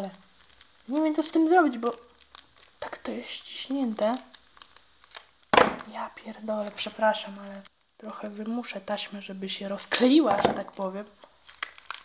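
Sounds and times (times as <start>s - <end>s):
foil packets crinkling: 0.0s - 12.0s
loud foil rustle: 0.0s - 12.0s.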